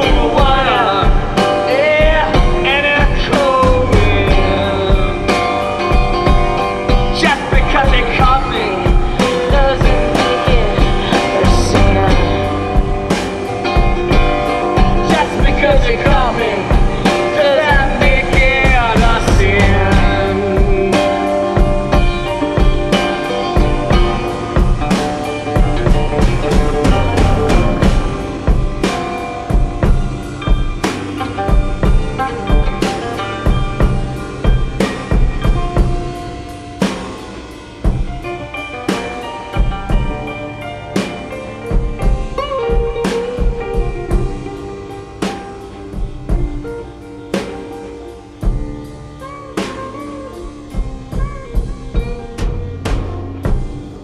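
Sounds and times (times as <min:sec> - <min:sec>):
regular drum beat: 0:00.0 - 0:54.0
sliding guitar notes: 0:00.0 - 0:54.0.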